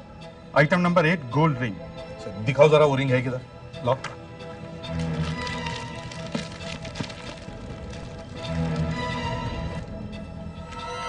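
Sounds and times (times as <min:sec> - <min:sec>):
background music with held tones: 0:00.0 - 0:11.0.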